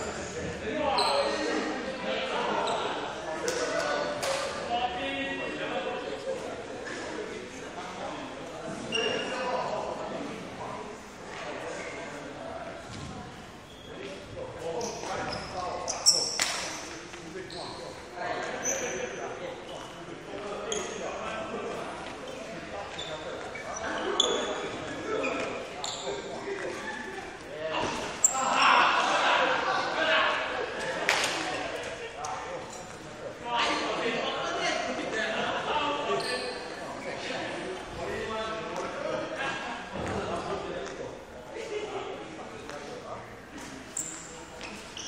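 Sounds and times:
voices in echoing hall: 0.0s - 45.0s
sneakers squeaking on court: 22.3s - 26.8s.

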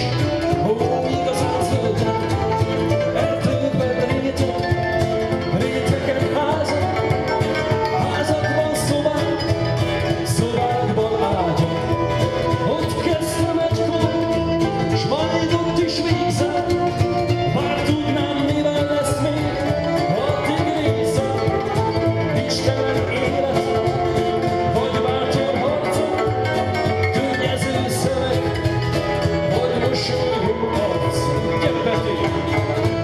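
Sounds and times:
acoustic guitar: 0.0s - 33.0s
double bass: 0.0s - 33.0s
man singing: 0.0s - 33.0s
violin: 0.0s - 33.0s.

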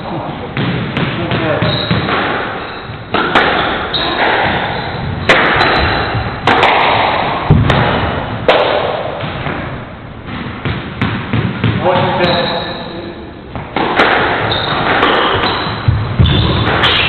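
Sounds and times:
squash ball hitting rackets and walls: 0.0s - 17.0s.

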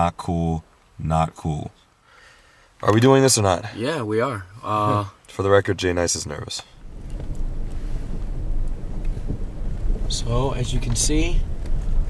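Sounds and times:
car rumbling over rough road: 6.8s - 12.0s.

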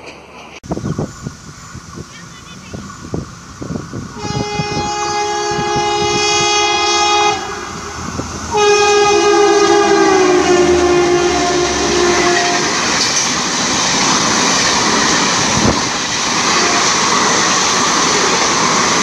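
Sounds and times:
train coaches rushing and clattering: 0.0s - 19.0s
train horn blasts: 4.2s - 13.1s, 16.5s - 17.1s.

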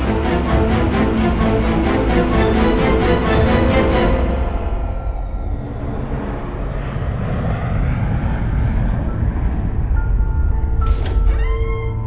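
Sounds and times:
loud deep rumble: 0.0s - 12.0s.

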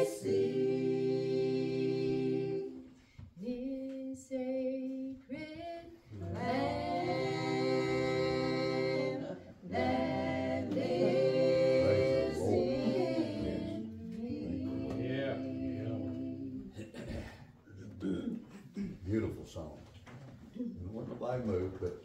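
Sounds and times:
group singing a hymn unaccompanied: 0.0s - 17.2s
soft high voice singing: 10.6s - 16.8s.

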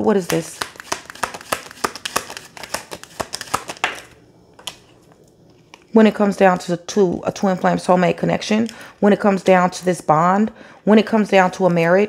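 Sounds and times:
tarot cards being shuffled: 0.1s - 5.2s.

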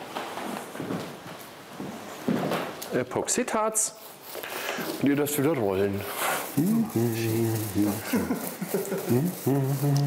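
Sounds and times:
man's voice holding low tone: 6.6s - 8.4s, 9.1s - 10.0s.

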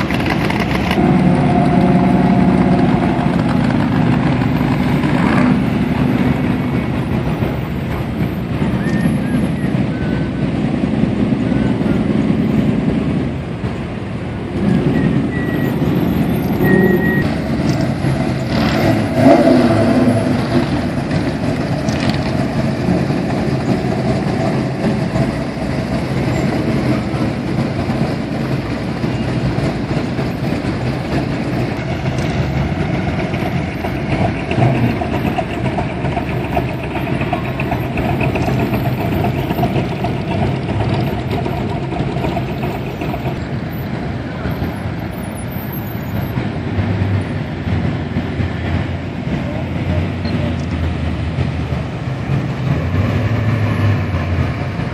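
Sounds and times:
cars driving slowly past: 0.0s - 54.9s.

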